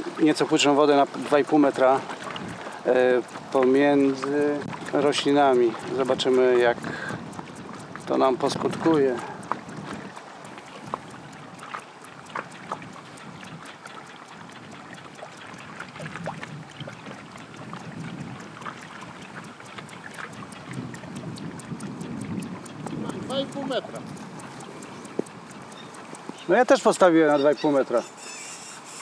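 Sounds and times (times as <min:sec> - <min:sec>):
water lapping around boat: 0:00.0 - 0:29.0
wind on microphone: 0:02.2 - 0:02.7, 0:03.5 - 0:11.7, 0:12.3 - 0:25.9.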